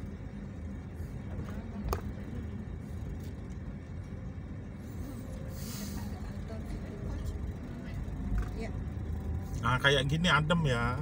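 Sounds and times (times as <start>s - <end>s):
vehicle driving slowly on road: 0.0s - 11.0s.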